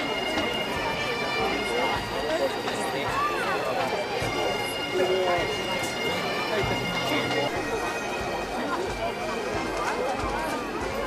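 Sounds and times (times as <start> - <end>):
bagpipes playing: 0.0 - 9.8
crowd chatter: 0.0 - 11.0.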